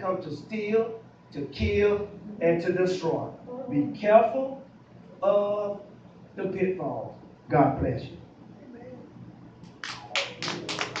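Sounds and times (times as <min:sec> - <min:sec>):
rhythmic handclapping: 0:09.6 - 0:11.0.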